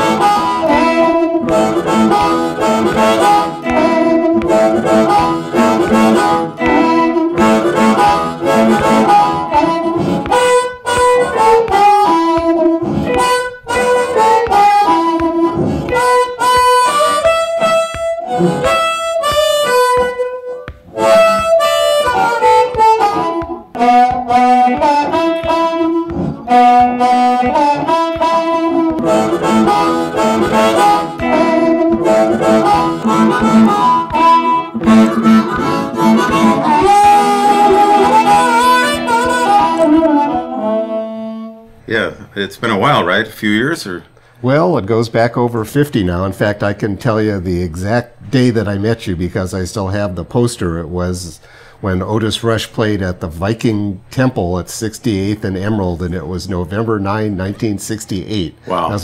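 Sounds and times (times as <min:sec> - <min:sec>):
blues harmonica: 0:00.0 - 0:41.8, 0:51.4 - 0:52.2
electric guitar: 0:00.0 - 0:41.8.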